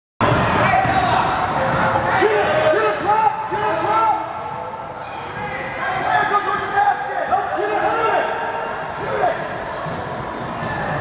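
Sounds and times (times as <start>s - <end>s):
voices echoing in a gym: 0.2s - 11.0s.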